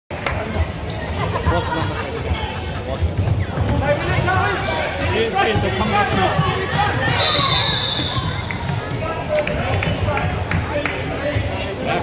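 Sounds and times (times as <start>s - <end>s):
voices in a hall: 0.1s - 12.0s.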